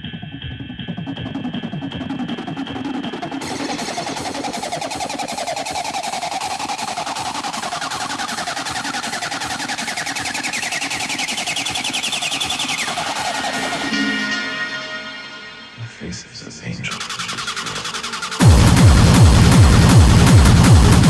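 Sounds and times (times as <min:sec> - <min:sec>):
hardcore industrial electronic music: 0:00.0 - 0:21.0.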